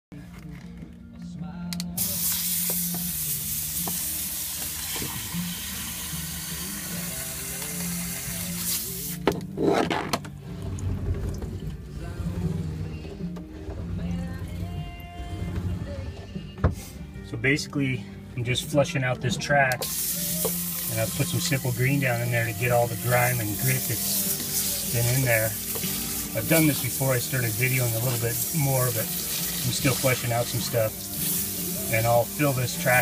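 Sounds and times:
background music with low tones: 0.1s - 33.0s
water spraying from hose nozzle: 2.0s - 9.2s, 19.8s - 33.0s.

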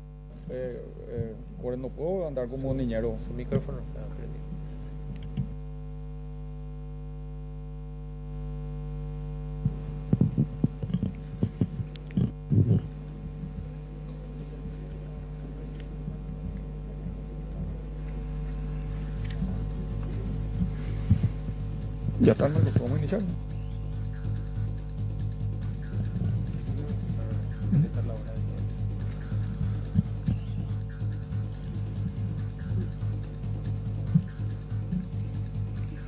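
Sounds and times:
electrical mains hum: 0.0s - 36.0s.

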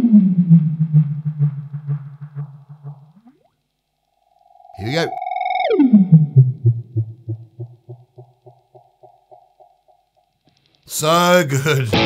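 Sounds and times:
delay pedal self-oscillating tone: 0.0s - 10.4s
repeating echoes: 0.1s - 3.5s, 4.2s - 10.2s.

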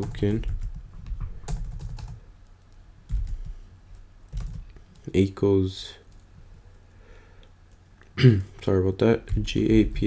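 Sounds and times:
computer keyboard typing: 0.0s - 2.2s, 3.1s - 5.1s.

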